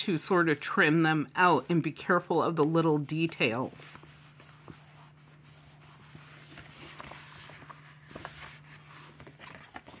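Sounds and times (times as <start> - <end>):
low steady hum: 0.0 - 10.0
paper pages rustling: 0.0 - 10.0.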